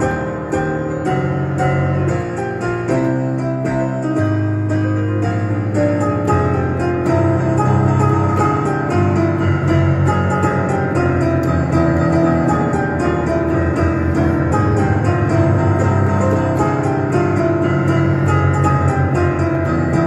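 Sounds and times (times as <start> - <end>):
digital piano playing chords: 0.0 - 20.0.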